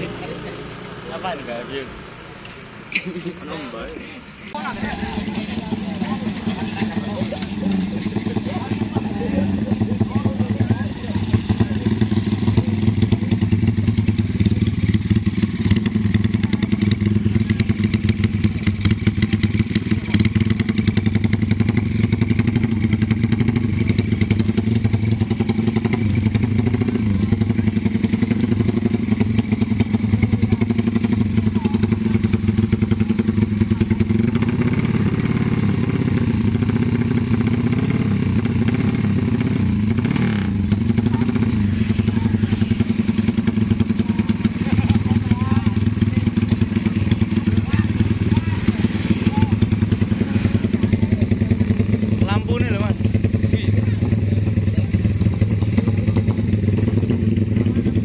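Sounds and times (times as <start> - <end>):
motorcycle engine running: 0.0 - 58.0.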